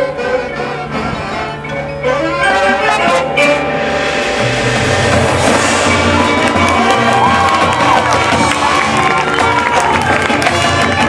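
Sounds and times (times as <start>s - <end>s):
marching band playing: 0.0s - 11.0s
crowd cheering: 4.2s - 11.0s.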